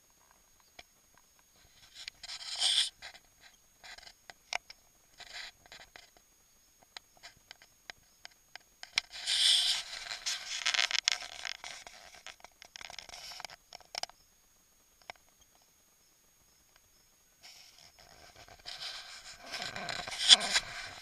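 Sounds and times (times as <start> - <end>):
plastic toys scraping and rubbing: 1.6 - 4.2, 5.2 - 6.1, 8.9 - 14.0, 17.4 - 21.0.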